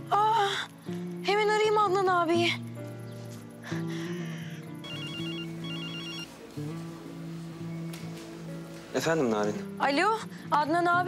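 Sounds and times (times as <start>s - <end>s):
soft background music score: 0.0s - 11.0s
mobile phone ringing: 4.8s - 6.8s.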